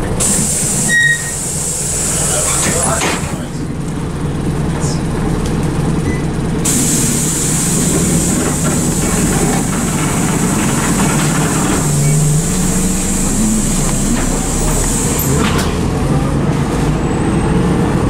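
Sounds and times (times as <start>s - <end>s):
bus body rattling: 0.0s - 17.0s
bus running gear rumble: 0.0s - 18.0s.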